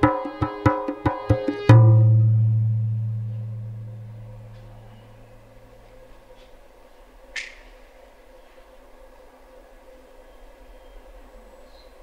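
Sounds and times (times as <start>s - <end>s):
low ringing percussion resonance: 0.0s - 5.8s.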